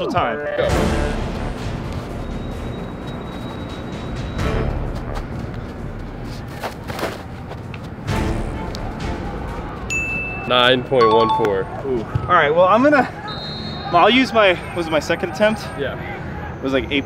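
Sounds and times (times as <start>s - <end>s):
background music with heavy bass: 0.6s - 6.4s.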